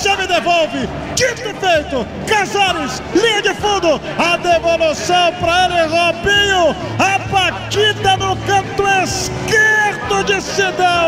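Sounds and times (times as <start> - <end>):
excited male commentator: 0.0 - 11.0.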